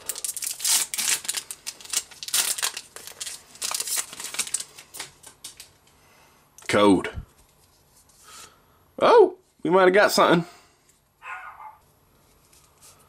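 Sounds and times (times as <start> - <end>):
foil wrapper tearing and crinkling: 0.0 - 5.7.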